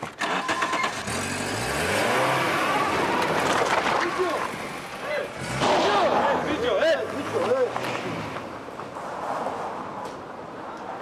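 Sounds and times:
vehicle engine revving: 0.2 - 3.5, 4.2 - 8.5.

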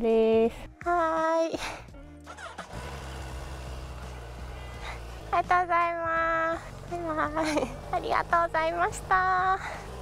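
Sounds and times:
motorcycle engine idling: 2.3 - 10.0.

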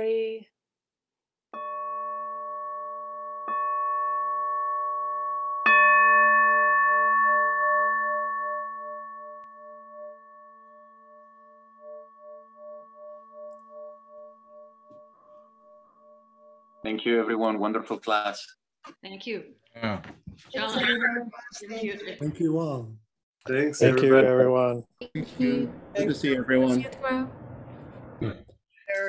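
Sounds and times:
singing bowl strikes: 1.6 - 16.9.

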